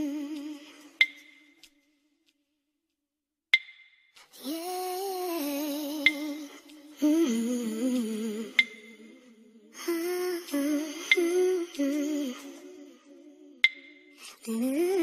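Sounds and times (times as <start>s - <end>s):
sharp percussive click: 3.6s - 4.0s
slow instrumental song: 4.2s - 13.0s.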